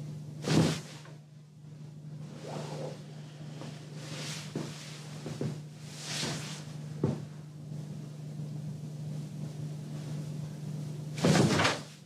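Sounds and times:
bedclothes rustling: 3.6 - 7.3.

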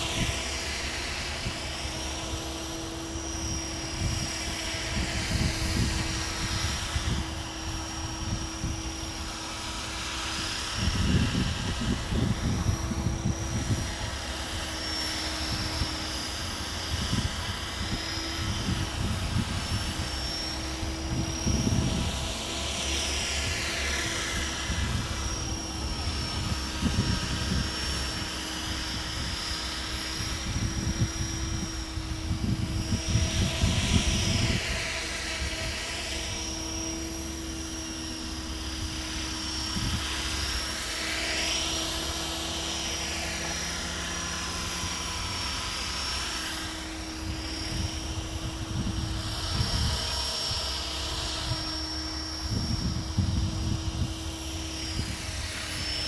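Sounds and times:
model helicopter rotor whine: 0.0 - 56.0
wind gusts buffeting microphone: 0.0 - 56.0.

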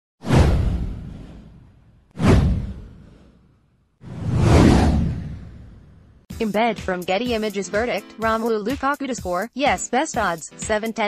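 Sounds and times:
whoosh: 0.2 - 6.3
deep low boom: 0.3 - 3.4, 4.1 - 6.2.

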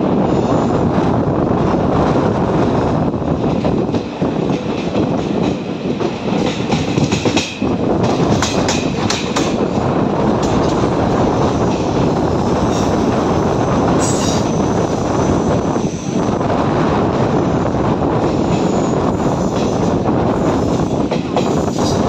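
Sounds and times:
train rumble: 0.0 - 22.0.

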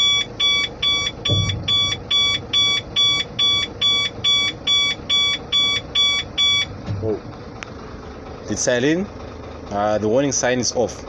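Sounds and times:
truck warning beeper: 0.0 - 7.2
low engine hum: 0.0 - 11.0.

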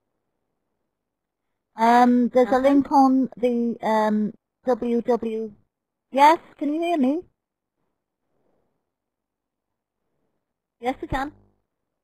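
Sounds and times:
person speaking: 1.8 - 7.3, 10.8 - 11.4.

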